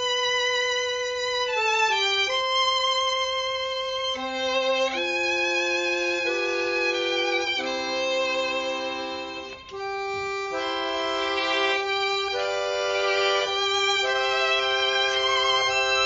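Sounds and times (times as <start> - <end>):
violin and accordion playing: 0.0 - 16.0.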